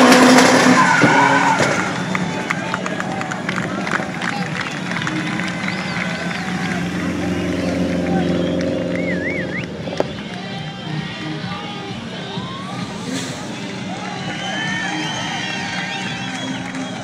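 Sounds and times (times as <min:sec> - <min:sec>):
car engine revving: 0:00.0 - 0:11.4, 0:12.3 - 0:17.0
crowd shouting and whistling: 0:00.0 - 0:17.0.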